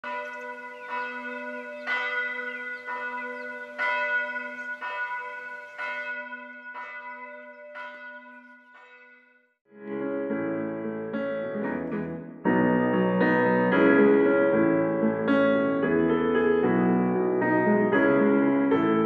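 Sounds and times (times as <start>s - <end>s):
church bell ringing: 0.0s - 9.6s.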